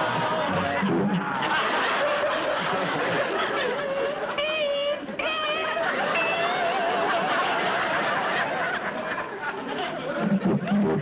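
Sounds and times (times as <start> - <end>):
studio audience laughing: 0.0 - 11.0.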